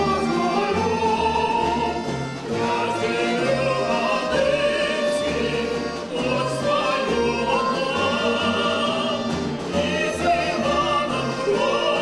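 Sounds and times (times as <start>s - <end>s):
instrumental ensemble: 0.0s - 12.0s
woman and men singing: 2.6s - 12.0s.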